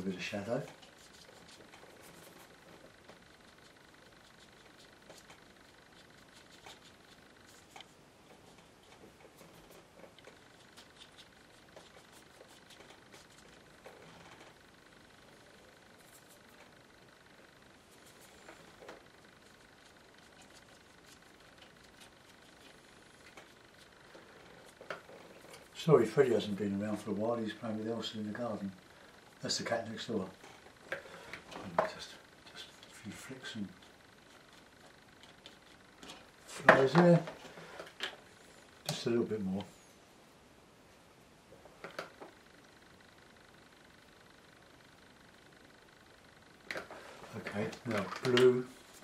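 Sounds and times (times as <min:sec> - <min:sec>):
brush scratching on paper: 0:00.0 - 0:14.6, 0:17.8 - 0:18.8, 0:19.4 - 0:25.7, 0:32.4 - 0:36.3.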